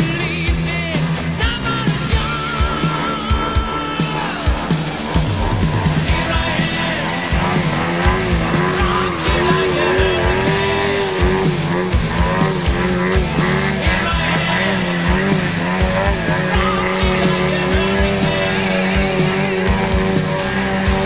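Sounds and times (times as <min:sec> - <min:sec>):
model airplane engine: 0:00.0 - 0:21.0
rock music with drum beat: 0:00.0 - 0:21.0.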